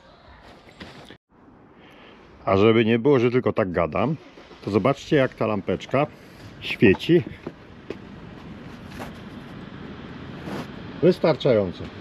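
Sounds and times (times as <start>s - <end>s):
passing train rumble: 4.2s - 12.0s.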